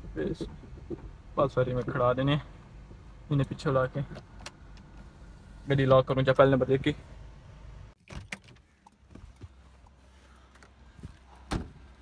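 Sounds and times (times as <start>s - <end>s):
car engine hum: 0.0s - 8.0s.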